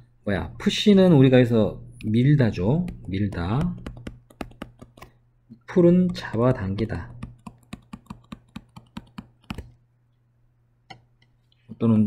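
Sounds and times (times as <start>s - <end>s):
stylus clicking on tablet screen: 2.8s - 5.2s, 6.0s - 9.8s.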